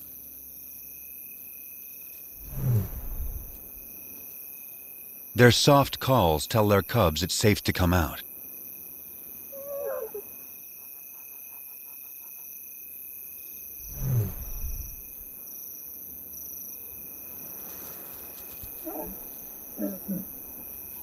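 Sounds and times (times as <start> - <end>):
crickets chirring: 0.0 - 7.0, 8.0 - 21.0
lioness calls: 9.5 - 10.3, 18.8 - 21.0.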